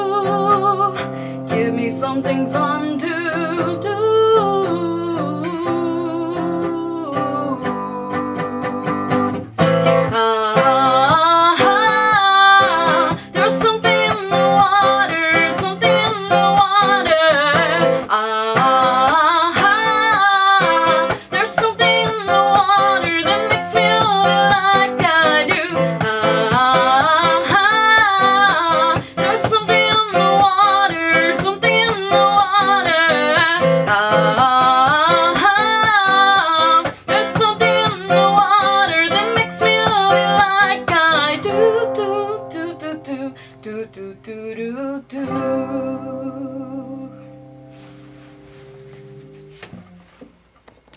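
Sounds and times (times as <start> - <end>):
woman singing: 0.0 - 47.4
classical guitar playing: 0.0 - 50.5.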